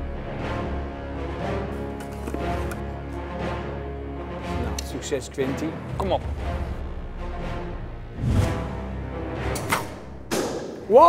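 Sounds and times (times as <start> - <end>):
background music: 0.0 - 11.0
arrow popping a balloon: 9.5 - 10.9.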